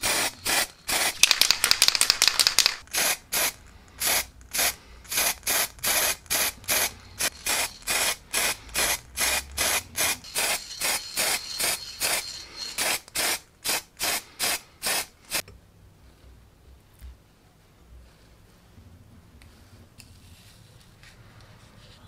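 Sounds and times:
spray paint can hissing: 0:00.0 - 0:15.4.

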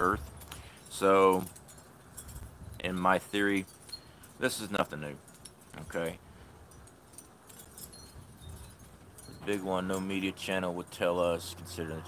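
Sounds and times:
faint metallic tinkling: 0:00.0 - 0:12.0
wind rumble on microphone: 0:02.2 - 0:03.2, 0:07.8 - 0:09.7.

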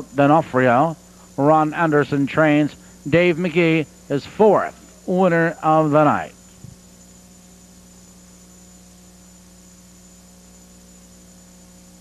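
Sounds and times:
electrical hum with hiss: 0:00.0 - 0:12.0.

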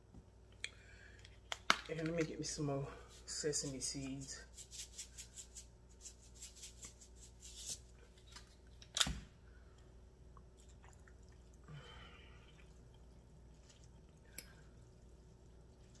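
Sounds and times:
soft rustle: 0:02.9 - 0:08.6.

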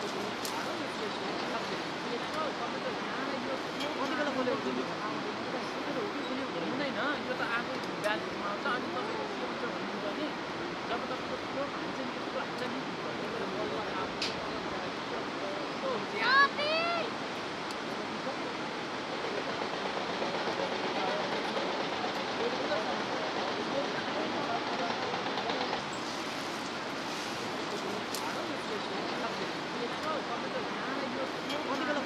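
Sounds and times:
river rapids rushing: 0:00.0 - 0:32.0
high-pitched shout: 0:16.2 - 0:17.1.

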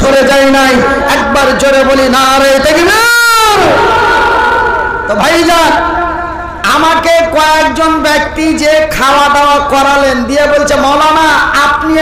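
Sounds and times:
man shouting through loudspeakers: 0:00.0 - 0:12.0.

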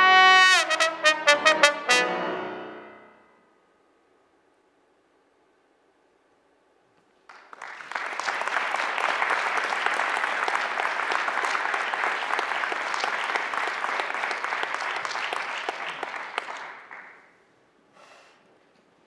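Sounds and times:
audience applauding: 0:07.3 - 0:17.3.

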